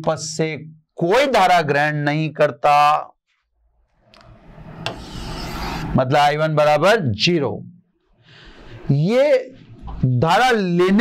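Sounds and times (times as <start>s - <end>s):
marker scraping on board: 4.8s - 6.0s.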